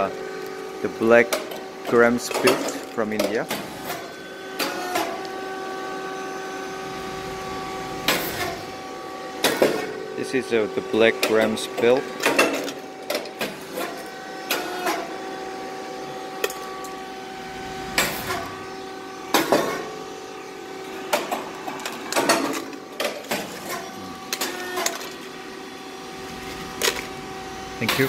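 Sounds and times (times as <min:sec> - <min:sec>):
machine humming: 0:00.0 - 0:28.0.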